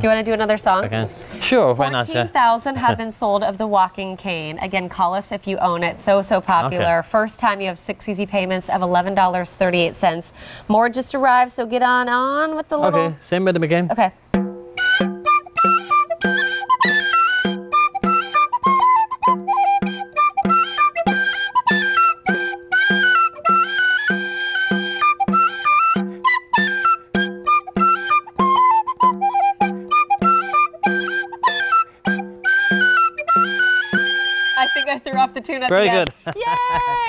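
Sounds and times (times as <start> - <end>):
frame drum beat: 14.2 - 16.4
tin whistle playing lively tune: 14.7 - 35.2.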